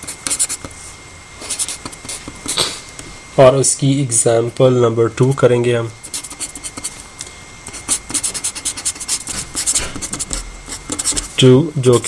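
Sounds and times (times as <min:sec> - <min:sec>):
pen writing on paper: 0:00.0 - 0:00.7, 0:01.5 - 0:02.6, 0:06.1 - 0:07.0, 0:07.7 - 0:11.4.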